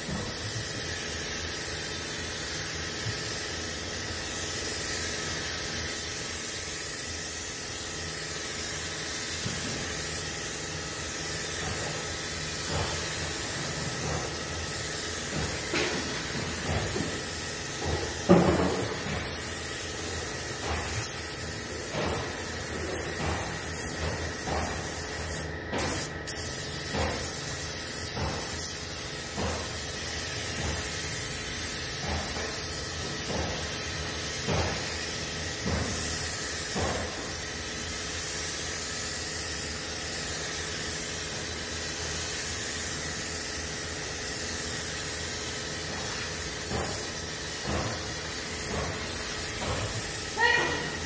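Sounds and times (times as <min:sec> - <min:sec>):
spray gun hissing: 0:00.0 - 0:51.0.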